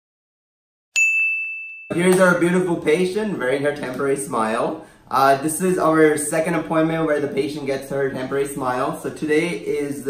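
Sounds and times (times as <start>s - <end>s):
bright bell-like ding: 1.0s - 2.0s.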